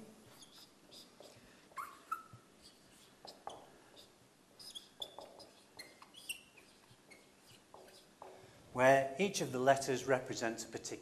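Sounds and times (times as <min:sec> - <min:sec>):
marker squeaking on whiteboard: 0:00.2 - 0:08.6.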